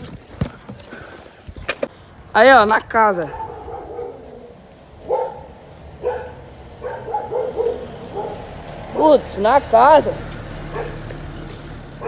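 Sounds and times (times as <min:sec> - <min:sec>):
dog barking: 0:03.3 - 0:08.5, 0:10.7 - 0:11.1.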